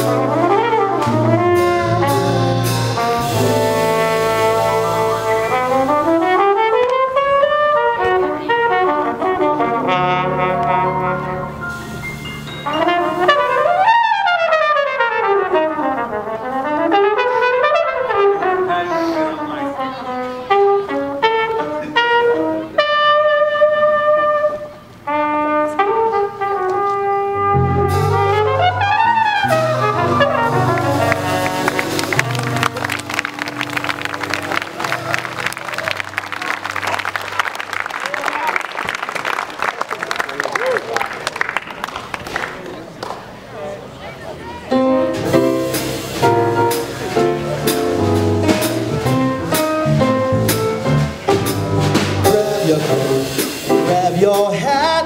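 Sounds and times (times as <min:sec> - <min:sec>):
jazz trumpet solo: 0:00.0 - 0:38.6, 0:45.0 - 0:55.0
jazz band playing: 0:00.0 - 0:39.8, 0:44.4 - 0:55.0
applause and cymbals: 0:30.4 - 0:43.4.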